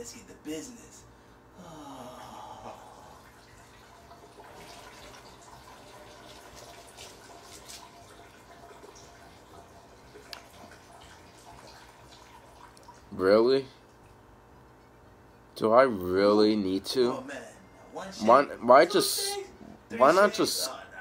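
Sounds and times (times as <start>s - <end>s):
liquid trickling into toilet: 2.9s - 15.0s.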